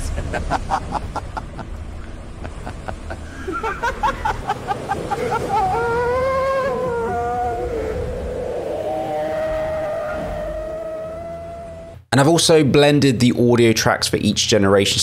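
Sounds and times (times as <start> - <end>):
person laughing: 0.0 - 8.0
crashing waves: 0.0 - 11.9
wavering voice-like tone: 5.4 - 12.0.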